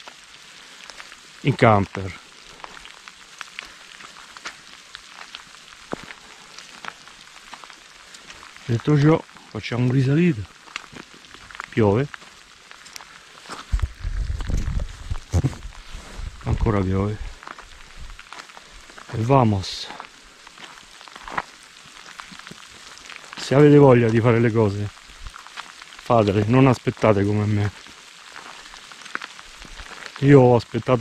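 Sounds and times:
rain hissing: 0.0s - 31.0s
raindrops ticking near microphone: 0.0s - 31.0s.

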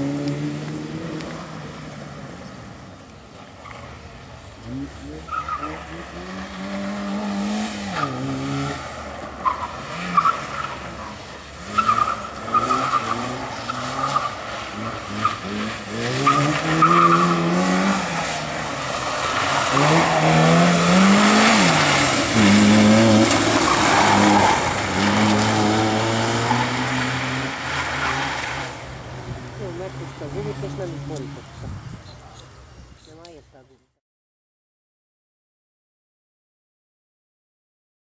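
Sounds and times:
car engine revving: 0.0s - 2.8s, 3.4s - 31.5s.

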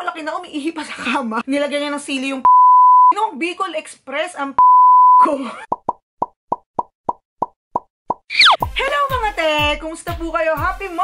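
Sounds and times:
censor bleep: 2.5s - 3.1s, 4.6s - 5.3s
cartoon pop sound effects: 5.7s - 8.7s.

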